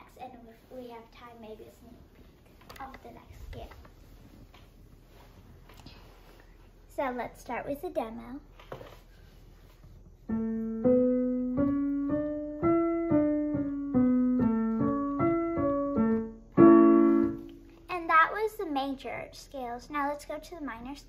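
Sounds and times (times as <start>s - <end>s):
digital piano playing scale: 10.3s - 17.6s.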